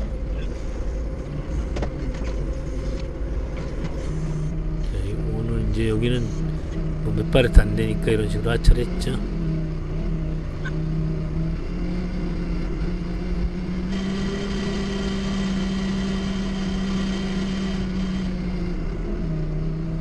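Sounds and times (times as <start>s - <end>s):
high thin whine: 0.0s - 9.2s
forklift engine running: 0.0s - 20.0s.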